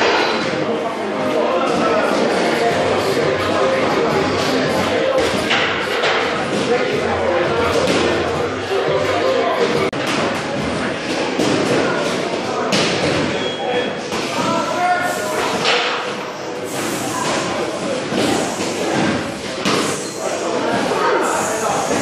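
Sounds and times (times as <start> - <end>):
indistinct voices: 0.0 - 22.0.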